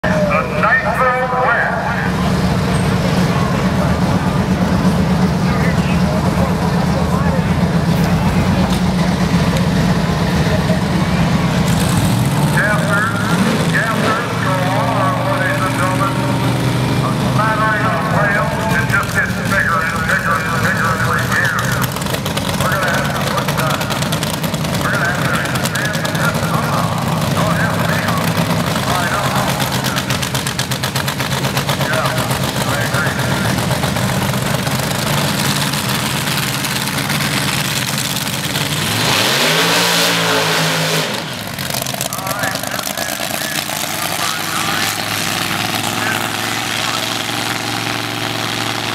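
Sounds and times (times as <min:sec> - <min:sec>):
people talking: 0:00.0 - 0:09.6, 0:10.3 - 0:11.5, 0:12.5 - 0:22.0, 0:22.6 - 0:24.1, 0:24.8 - 0:30.2, 0:31.7 - 0:33.9, 0:42.0 - 0:47.5
vehicle engine idling: 0:00.0 - 0:39.6, 0:40.6 - 0:48.9.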